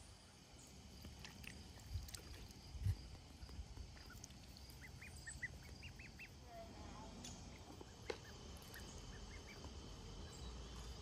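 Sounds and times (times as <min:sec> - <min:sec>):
ducklings peeping: 0:00.6 - 0:06.8, 0:07.4 - 0:11.0.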